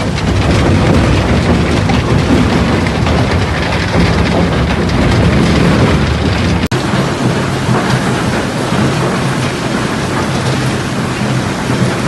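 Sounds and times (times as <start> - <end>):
machinery and moving stone: 0.0 - 12.0.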